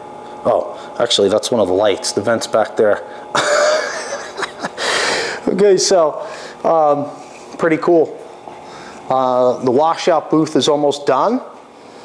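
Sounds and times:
man laughing breathily: 3.3s - 5.5s.

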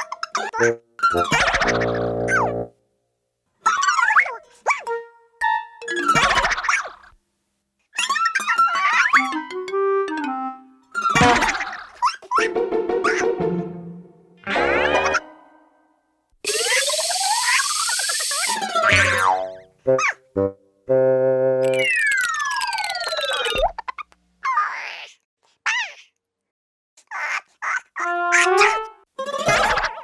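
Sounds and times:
cartoon boings and pops: 0.4s - 2.7s, 3.7s - 7.1s, 11.0s - 13.4s, 14.4s - 15.4s, 16.5s - 20.3s, 21.6s - 24.1s
spray hiss with rising whistle: 16.5s - 18.6s
whistles sliding down in pitch: 16.5s - 18.7s, 21.6s - 23.6s.

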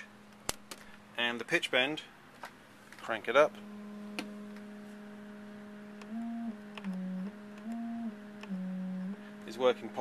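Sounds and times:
synthesizer note with pitch bends: 3.4s - 10.0s.

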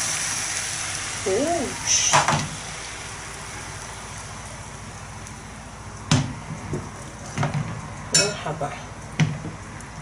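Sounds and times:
egg sizzling in frying pan: 0.0s - 10.0s.

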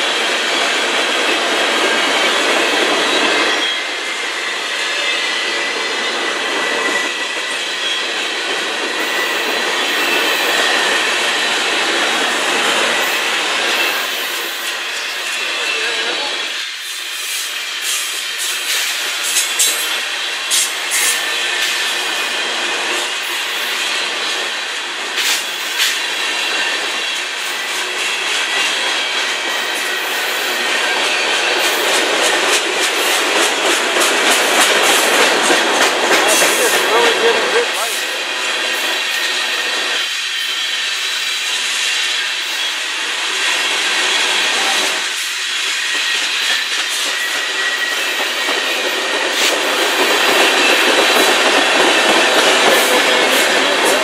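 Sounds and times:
steel wheels rolling on rail: 0.0s - 54.0s.

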